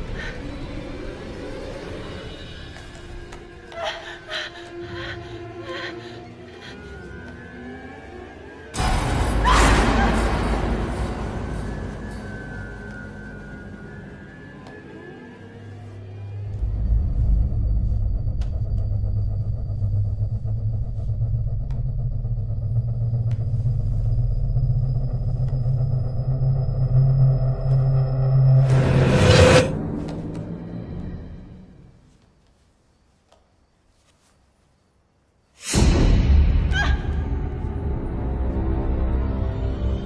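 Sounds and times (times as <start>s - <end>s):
low droning rumble: 16.5s - 28.7s.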